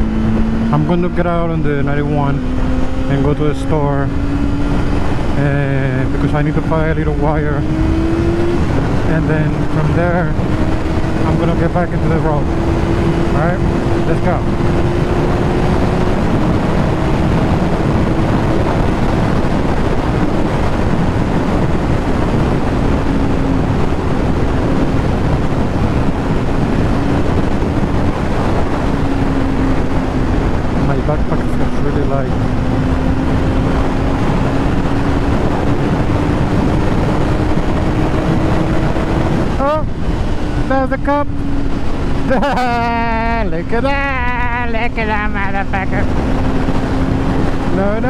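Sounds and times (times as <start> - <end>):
motorcycle engine cruising: 0.0 - 48.0
wind rush on microphone: 0.0 - 48.0.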